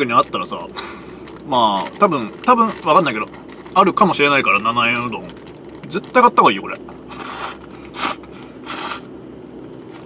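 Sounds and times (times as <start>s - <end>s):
person slurping noodles: 7.1s - 9.1s.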